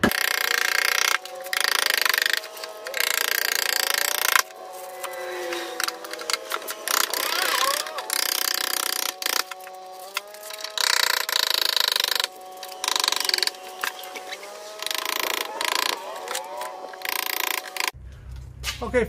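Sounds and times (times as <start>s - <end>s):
handheld power tool bursts: 0.0s - 18.0s.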